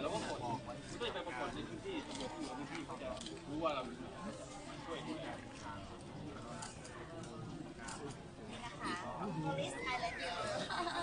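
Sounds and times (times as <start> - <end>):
voices of people: 0.0 - 11.0.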